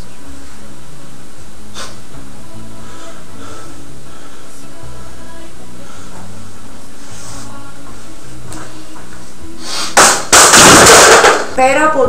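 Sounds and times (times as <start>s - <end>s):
quiet background music: 0.0s - 12.0s
metal chair crashing on tiled floor: 10.0s - 11.6s.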